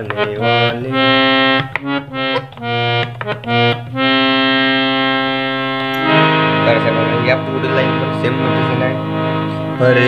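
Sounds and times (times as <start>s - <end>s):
harmonium note: 0.0s - 10.0s.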